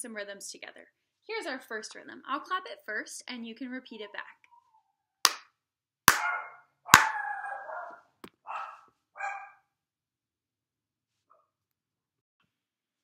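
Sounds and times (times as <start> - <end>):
hand claps: 5.3 - 5.5, 6.9 - 7.1
dog barking: 6.1 - 9.7.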